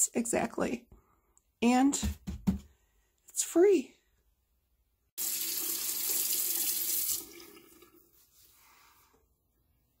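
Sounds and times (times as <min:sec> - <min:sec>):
tap water running into sink: 0:05.2 - 0:08.0.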